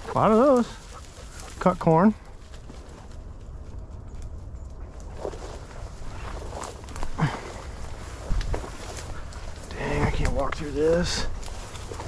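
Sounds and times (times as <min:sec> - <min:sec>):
footsteps through brush: 0:00.0 - 0:12.0
wind rumble on microphone: 0:02.2 - 0:12.0.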